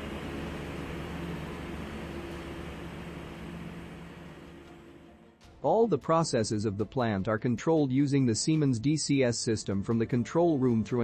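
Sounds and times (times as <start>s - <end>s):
machinery humming: 0.0s - 5.4s.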